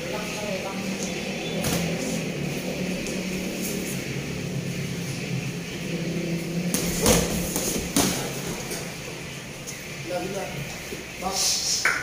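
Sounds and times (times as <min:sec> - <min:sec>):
steady low hum: 0:00.0 - 0:11.4
boxing gloves slapping: 0:06.7 - 0:08.8.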